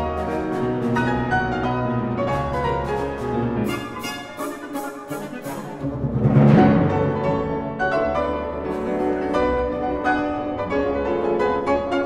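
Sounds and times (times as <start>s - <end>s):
piano quick runs: 0.0s - 12.0s
symphony orchestra playing: 0.0s - 12.0s.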